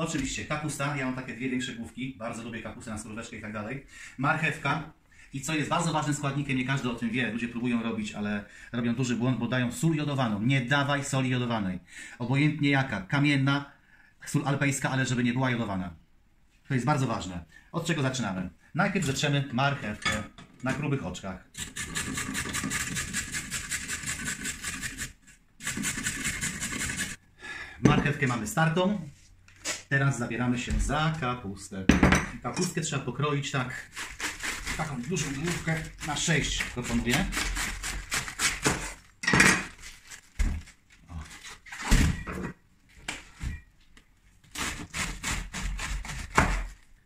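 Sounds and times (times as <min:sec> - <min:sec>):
carrot scraping on grater: 0:21.6 - 0:27.2, 0:33.8 - 0:38.9, 0:44.6 - 0:46.8
knife cutting crunchy cabbage: 0:33.9 - 0:39.1, 0:44.5 - 0:46.8.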